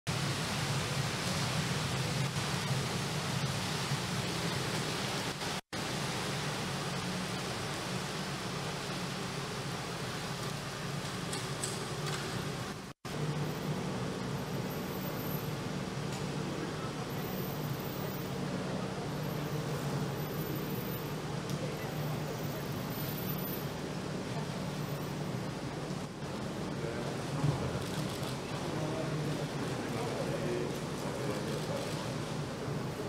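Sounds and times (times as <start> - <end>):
rain falling on wet ground: 0.1 - 33.0.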